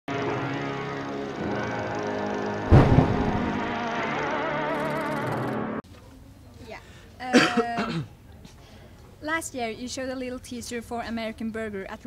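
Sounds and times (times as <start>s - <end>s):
man clearing his throat: 7.3s - 8.2s.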